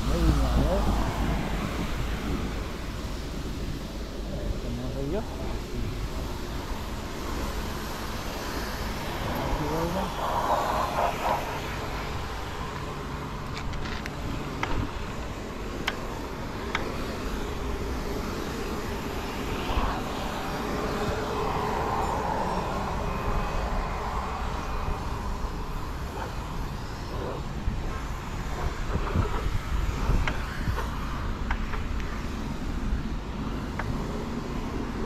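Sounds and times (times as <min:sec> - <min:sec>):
road noise: 0:00.0 - 0:35.0
wind rumbling on microphone: 0:00.0 - 0:35.0.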